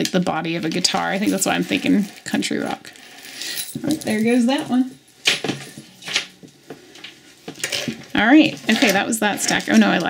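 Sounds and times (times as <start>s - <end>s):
metal chains clinking: 0.9s - 6.2s.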